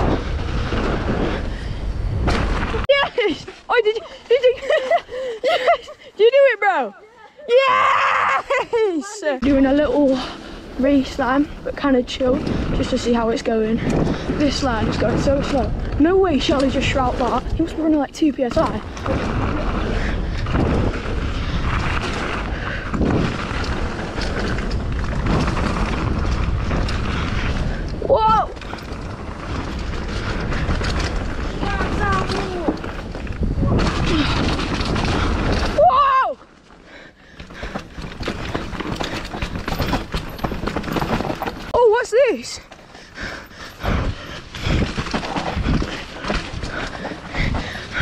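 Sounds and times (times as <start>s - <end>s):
wind buffeting microphone: 0.0s - 3.5s, 9.4s - 36.0s, 37.3s - 48.0s
rumble of tyres on dirt: 0.0s - 6.9s, 7.6s - 48.0s.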